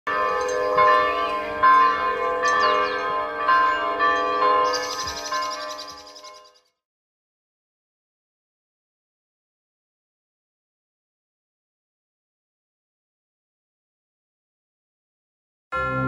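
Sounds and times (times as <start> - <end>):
bells ringing: 0.1 - 6.6.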